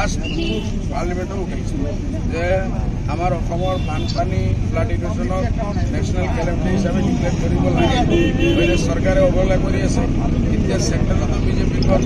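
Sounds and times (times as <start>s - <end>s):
man speaking to crowd: 0.0s - 12.0s.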